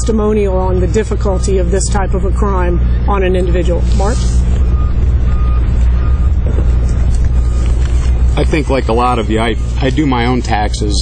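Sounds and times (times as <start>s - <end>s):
motor humming: 0.6s - 10.2s
faint high-pitched beep: 4.6s - 6.7s.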